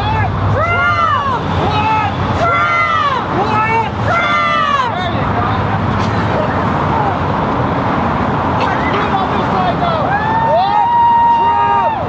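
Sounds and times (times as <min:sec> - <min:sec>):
faint voices: 0:00.0 - 0:12.0
road traffic driving past: 0:00.0 - 0:12.0.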